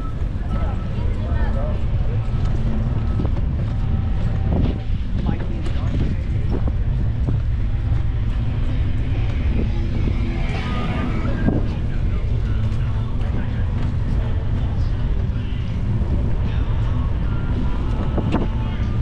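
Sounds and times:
faint voices: 0.0s - 19.0s
wind buffeting microphone: 0.0s - 19.0s.

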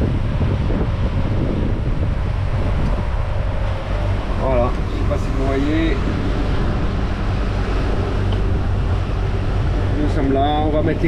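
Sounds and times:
low engine drone: 0.0s - 11.0s
wind and water noise: 0.0s - 11.0s.

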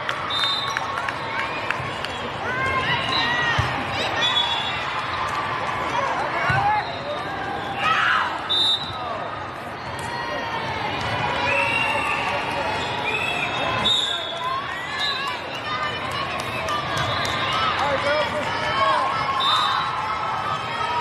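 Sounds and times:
volleyballs bouncing and struck: 6.2s - 6.8s.

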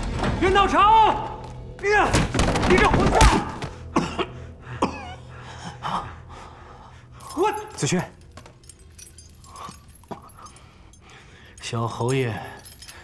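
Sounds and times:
men grunting and breathing: 3.6s - 7.4s, 9.1s - 11.6s.

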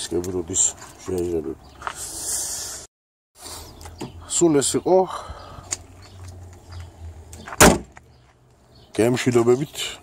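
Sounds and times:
car bonnet slammed shut: 7.5s - 8.0s.

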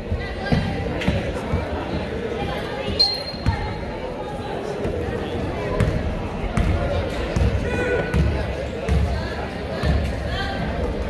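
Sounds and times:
chatter of voices: 0.0s - 11.0s.

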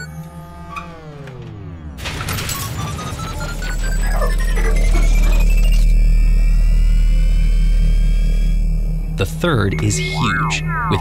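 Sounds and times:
rising thin whine: 9.8s - 11.0s.

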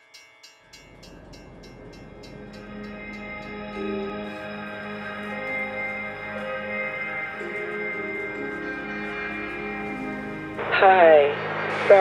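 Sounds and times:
soft music with repeating note: 0.0s - 11.9s
train rumbling: 0.0s - 12.0s.

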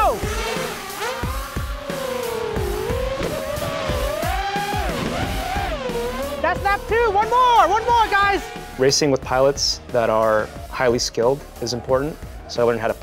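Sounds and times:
quadcopter motors whining: 0.0s - 8.8s
background music: 0.0s - 13.0s.

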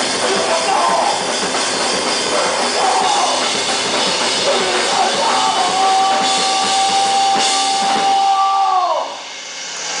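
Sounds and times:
drum and cymbal hits: 0.0s - 10.0s.

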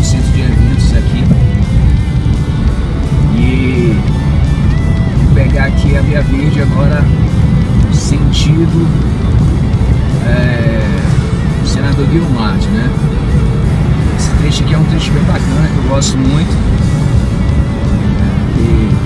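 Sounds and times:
car road and engine noise: 0.0s - 19.0s
music with a voice: 0.0s - 19.0s.

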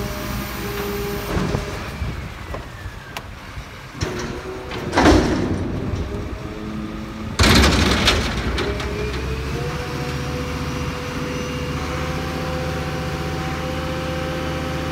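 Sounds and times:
truck engine and hydraulics whine: 0.0s - 14.9s
loud crash: 7.4s - 9.0s.

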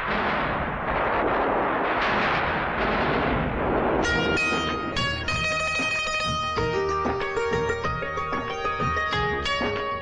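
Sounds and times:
low rumble: 0.0s - 6.5s.

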